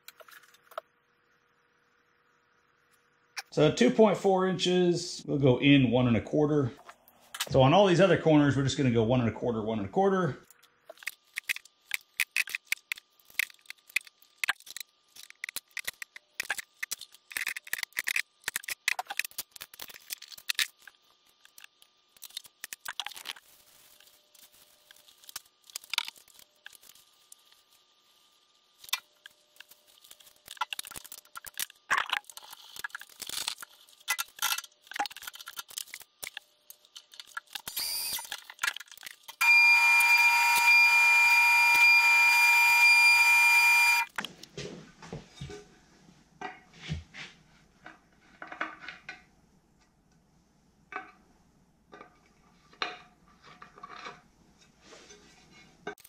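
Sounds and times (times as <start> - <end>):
milling machine high whine: 39.4 - 44.1.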